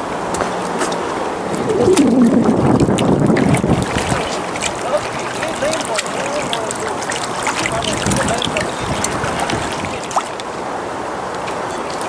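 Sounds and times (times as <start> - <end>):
wind buffeting microphone: 1.1 - 10.2
waves splashing on rocks: 1.5 - 10.7.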